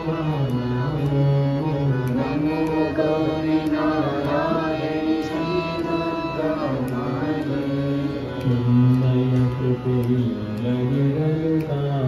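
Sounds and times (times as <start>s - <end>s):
light clicks keeping beat: 0.0s - 12.0s
group singing devotional song: 1.4s - 11.9s.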